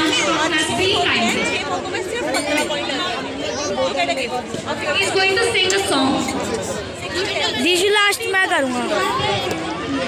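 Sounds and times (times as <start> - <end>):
busy crowd babble: 0.0 - 10.0
people chattering: 0.0 - 10.0.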